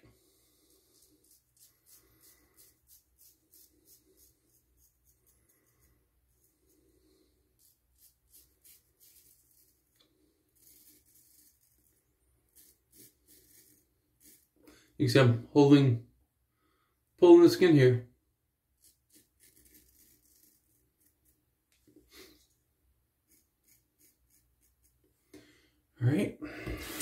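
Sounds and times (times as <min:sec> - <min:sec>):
razor scratching through stubble: 0:00.6 - 0:06.8, 0:07.6 - 0:14.6, 0:18.8 - 0:21.4, 0:23.3 - 0:25.0.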